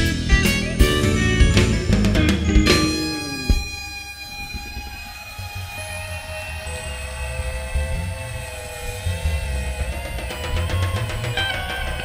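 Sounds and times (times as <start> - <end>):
sustained guitar tones: 0.0 - 12.0
held electronic tones: 1.7 - 12.0.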